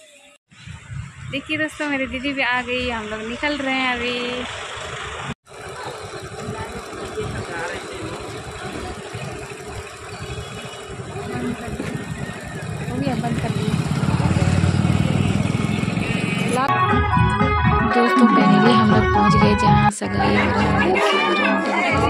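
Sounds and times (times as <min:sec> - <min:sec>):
passing motor vehicles: 0:00.8 - 0:16.7
people talking: 0:01.3 - 0:04.5, 0:05.6 - 0:09.9, 0:11.0 - 0:15.4, 0:16.4 - 0:16.7, 0:17.8 - 0:22.0
motorcycle engine: 0:02.0 - 0:17.3.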